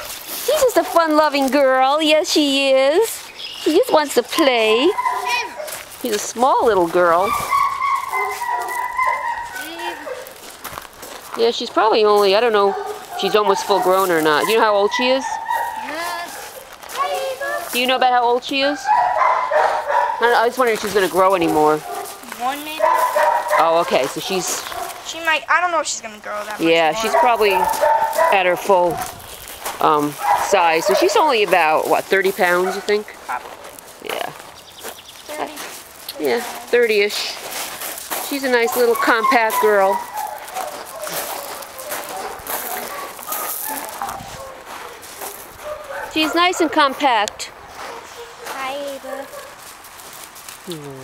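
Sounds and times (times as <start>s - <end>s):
paws crunching on gravel: 0.0s - 50.7s
dog sniffing: 4.4s - 5.9s, 6.7s - 10.4s, 12.0s - 17.9s, 18.7s - 25.1s, 26.5s - 33.7s, 36.4s - 47.1s, 47.7s - 49.8s
dog whimpering: 4.8s - 5.7s, 7.2s - 10.3s
dog whining: 4.8s - 5.7s, 7.2s - 10.3s.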